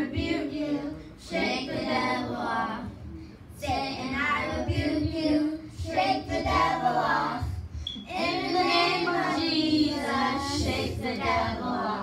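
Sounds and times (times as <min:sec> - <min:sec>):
girls' choir singing: 0:03.7 - 0:07.4, 0:08.1 - 0:12.0.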